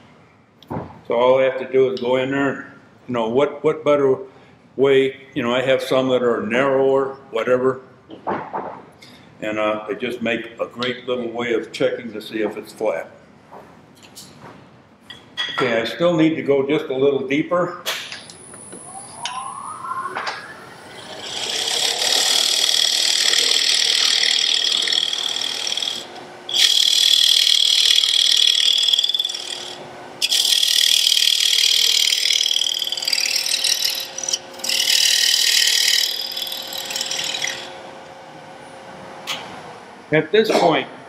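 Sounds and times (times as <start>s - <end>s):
lathe humming: 18.6s - 40.0s
turning tool cutting spinning wood: 19.0s - 38.3s.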